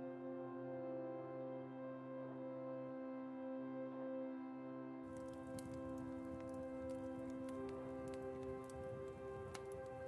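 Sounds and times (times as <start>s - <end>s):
soft ambient music: 0.0s - 10.0s
pattering with light ticks: 5.1s - 10.0s.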